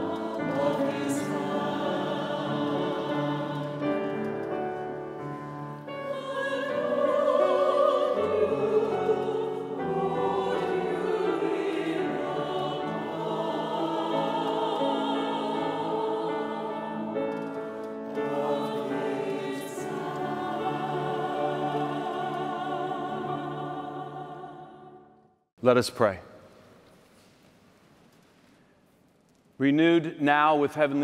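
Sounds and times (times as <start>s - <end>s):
choir singing a hymn: 0.0s - 25.2s
piano accompaniment: 0.0s - 25.2s.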